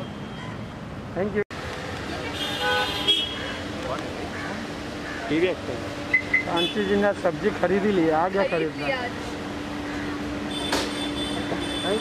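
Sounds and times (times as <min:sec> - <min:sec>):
street background hum: 0:00.0 - 0:12.0.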